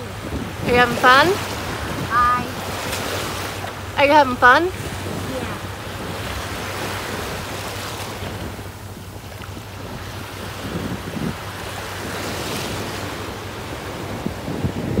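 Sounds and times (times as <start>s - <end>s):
small waves on sandy beach: 0.0s - 15.0s
wind buffeting microphone: 0.0s - 15.0s.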